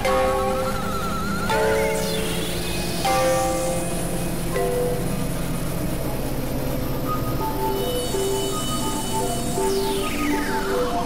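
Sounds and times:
experimental electronic music: 0:00.0 - 0:11.0
held synth chord: 0:00.0 - 0:11.0
low drone: 0:00.0 - 0:11.0.

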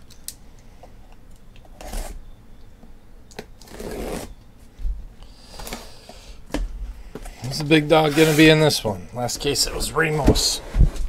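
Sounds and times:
blade slicing packing tape: 0:03.6 - 0:04.3.

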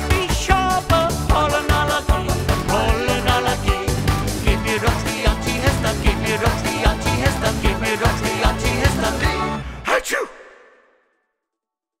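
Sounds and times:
man imitating a sneeze: 0:09.9 - 0:10.6.

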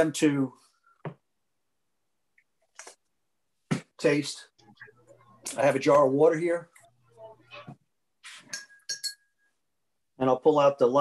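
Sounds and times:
glass clinking: 0:08.4 - 0:09.6.

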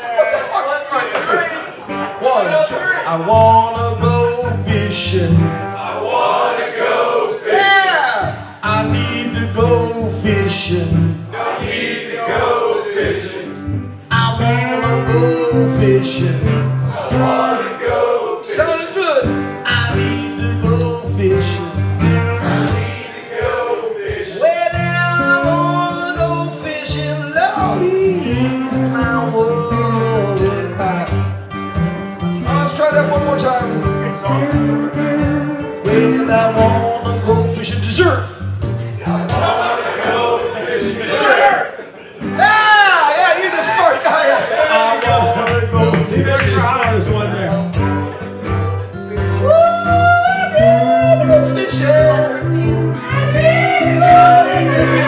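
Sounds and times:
acoustic guitars playing blues: 0:00.0 - 0:55.0
man singing: 0:03.0 - 0:05.7, 0:07.5 - 0:11.3, 0:14.1 - 0:17.4, 0:18.4 - 0:22.2, 0:24.2 - 0:31.4, 0:32.4 - 0:38.4, 0:44.6 - 0:47.6, 0:49.2 - 0:55.0.

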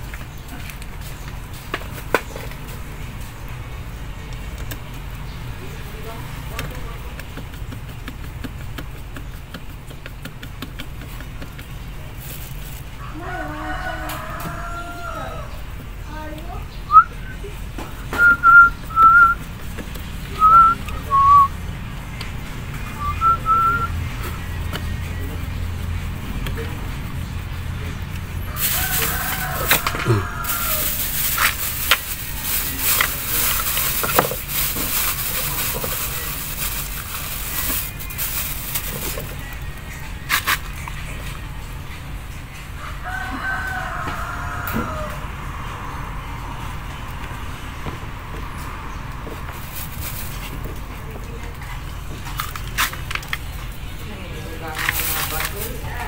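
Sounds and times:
rustling and handling noise: 0:06.4 - 0:15.0, 0:28.5 - 0:41.3, 0:49.2 - 0:56.0
rooster crowing: 0:13.0 - 0:15.7, 0:28.4 - 0:31.7, 0:42.8 - 0:45.5.

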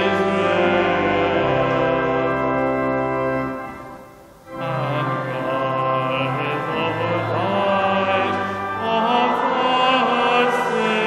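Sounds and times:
congregation singing a carol: 0:00.0 - 0:03.9, 0:04.5 - 0:11.0
pipe organ: 0:00.0 - 0:11.0.

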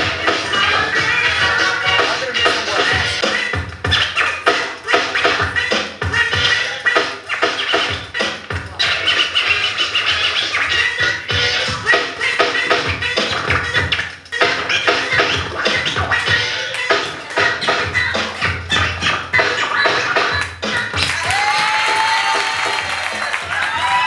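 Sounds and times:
vinyl record scratching: 0:00.0 - 0:21.7
music: 0:00.0 - 0:24.0.

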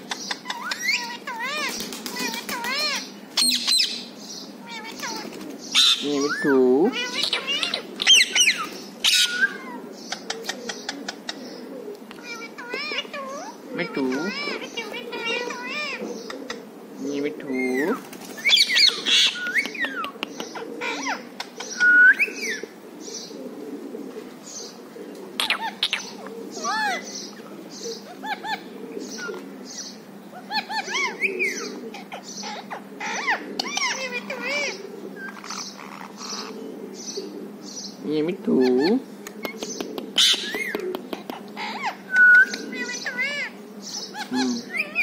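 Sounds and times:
parakeets chirping and squawking: 0:00.0 - 0:23.4, 0:25.4 - 0:45.0
parrot mimicking speech: 0:04.6 - 0:07.8, 0:12.2 - 0:16.0.

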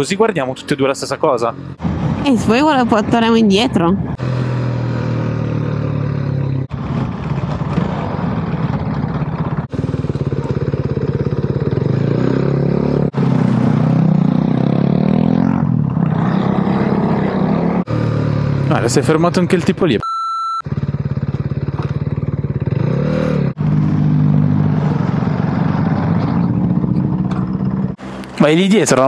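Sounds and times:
motorcycle engine revving: 0:03.9 - 0:19.5, 0:20.6 - 0:28.4.

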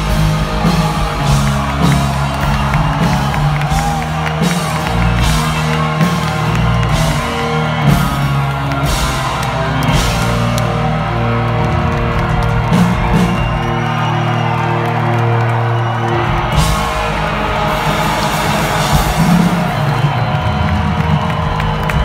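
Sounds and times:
crowd whooping and cheering: 0:00.0 - 0:22.0
punk rock band playing live: 0:00.0 - 0:22.0.

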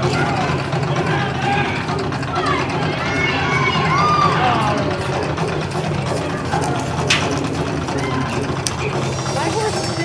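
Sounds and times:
faint voices: 0:00.0 - 0:10.0
low mechanical hum: 0:00.0 - 0:10.0.

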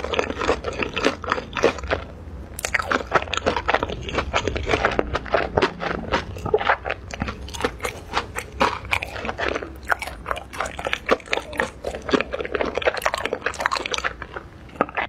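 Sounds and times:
crunching and chewing fried food: 0:00.0 - 0:15.0.

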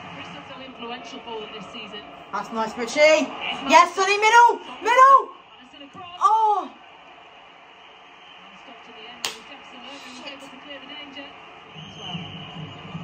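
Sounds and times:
commentator's voice from tv: 0:00.0 - 0:06.8, 0:08.4 - 0:11.5
crowd noise: 0:00.0 - 0:13.0.

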